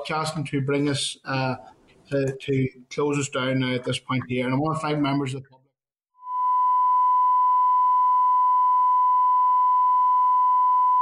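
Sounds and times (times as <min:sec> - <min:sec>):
steady test tone beep: 0:06.2 - 0:11.0.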